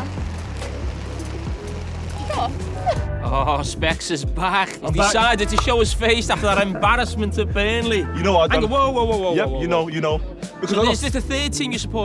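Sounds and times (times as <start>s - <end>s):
falling rain hiss: 0.0s - 3.1s
background music with bass line: 0.0s - 12.0s.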